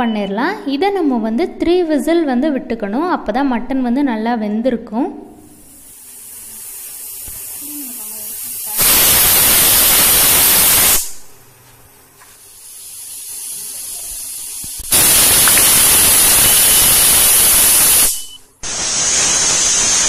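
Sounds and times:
steam hissing at valve: 0:05.5 - 0:11.3, 0:12.2 - 0:20.0
pressure cooker whistling: 0:08.6 - 0:11.1, 0:14.9 - 0:20.0.

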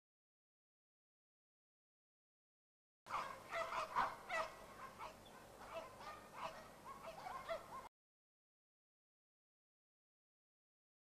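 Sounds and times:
flock of birds calling: 0:03.1 - 0:07.9.

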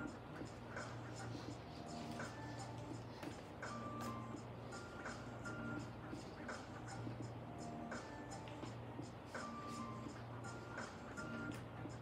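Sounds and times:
faint steady background tones: 0:00.0 - 0:12.0.

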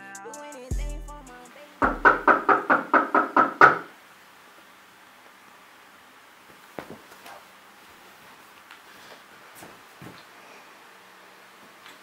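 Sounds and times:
rapid knocking: 0:01.8 - 0:03.8.

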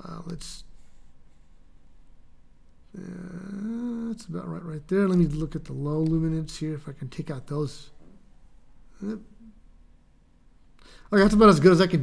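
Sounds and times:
man saying yeah: 0:03.0 - 0:04.7.

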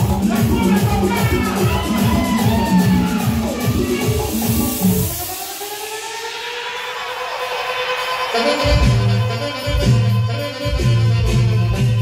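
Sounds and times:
dance music with bass beat: 0:00.0 - 0:12.0
slow rising sweep: 0:01.7 - 0:08.3.

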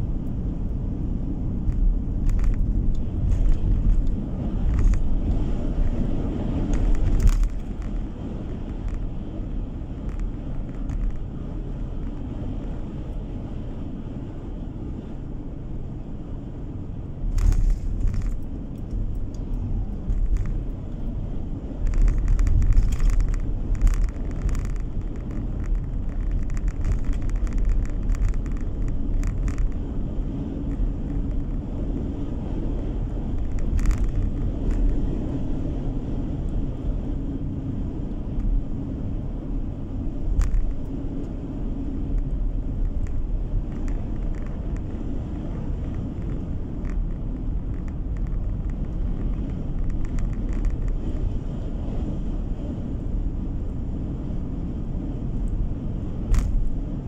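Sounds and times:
car cabin road rumble: 0:00.0 - 0:57.0.

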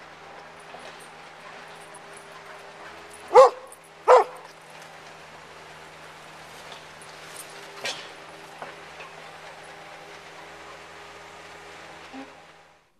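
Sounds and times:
dog barking: 0:03.3 - 0:04.5.

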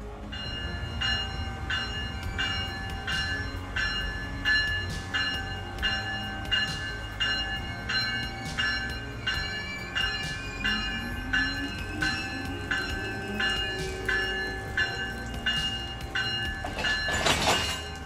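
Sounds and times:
idling rail equipment rumble: 0:00.0 - 0:18.0
locomotive bell ringing: 0:00.0 - 0:18.0.

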